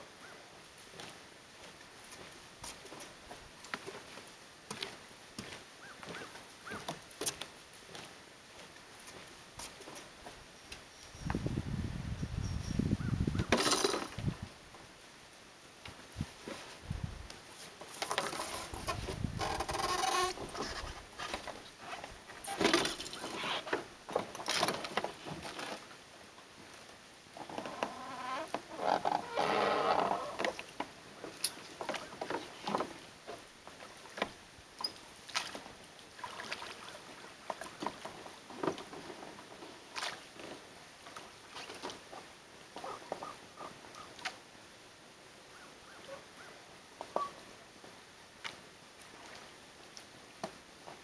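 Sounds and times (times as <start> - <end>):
oars clicking: 17.8 - 25.9, 27.4 - 44.4.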